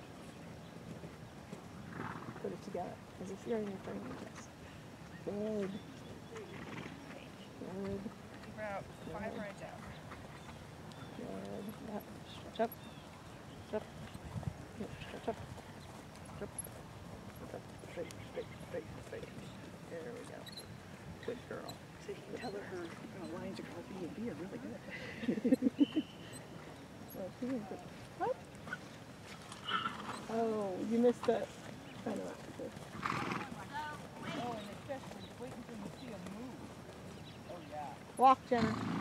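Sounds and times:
horse trotting on sand: 0:00.3 - 0:24.9, 0:25.5 - 0:39.0
horse snorting: 0:01.8 - 0:02.6, 0:28.7 - 0:31.5, 0:32.2 - 0:35.3, 0:38.5 - 0:39.0
soft voices: 0:02.5 - 0:09.9.

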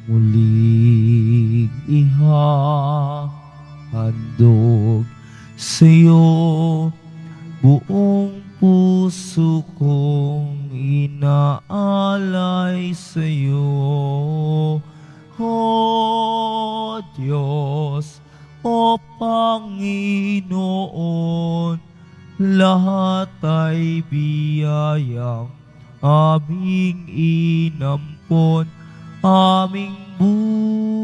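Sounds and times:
person singing a hymn: 0:00.0 - 0:31.0.

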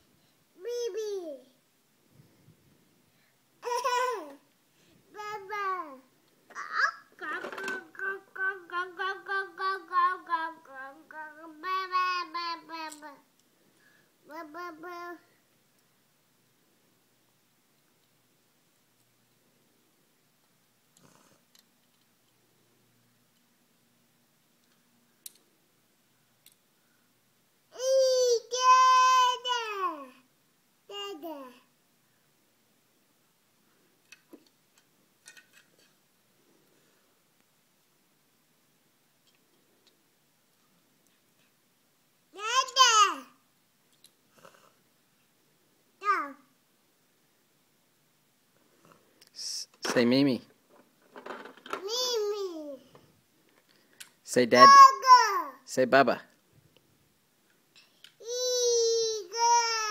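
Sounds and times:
toddler jabbering: 0:03.6 - 0:04.4, 0:05.2 - 0:13.2, 0:27.7 - 0:30.2, 0:30.9 - 0:31.6, 0:42.4 - 0:43.4, 0:46.0 - 0:46.4, 0:51.8 - 0:52.9, 0:54.6 - 0:55.7, 0:58.2 - 0:59.9.

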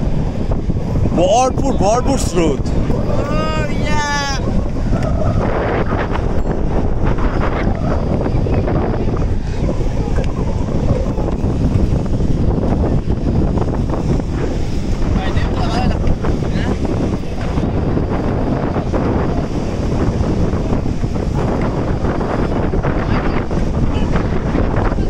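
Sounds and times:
waves breaking on shore: 0:00.0 - 0:25.0
wind buffeting microphone: 0:00.0 - 0:25.0.

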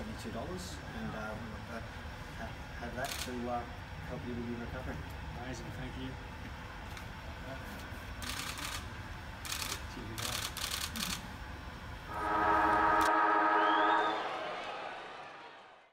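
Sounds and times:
arching whistle: 0:12.1 - 0:14.7.

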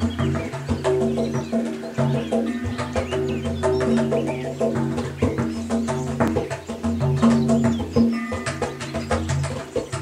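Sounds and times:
hand drum playing: 0:00.0 - 0:10.0
magpies chattering: 0:00.0 - 0:10.0.

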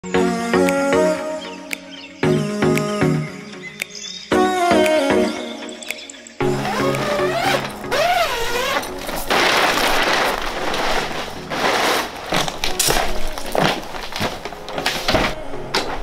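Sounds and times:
background music with gliding lines: 0:00.0 - 0:16.0
tent fabric door rustling: 0:06.5 - 0:16.0.

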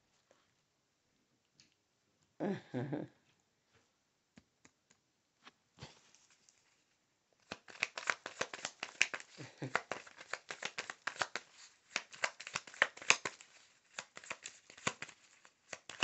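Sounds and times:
cards being shuffled: 0:07.4 - 0:16.0.

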